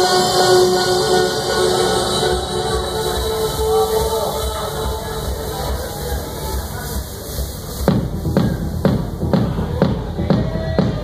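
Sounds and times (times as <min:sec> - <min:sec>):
techno music: 0:00.0 - 0:11.0
kick drum: 0:07.9 - 0:11.0.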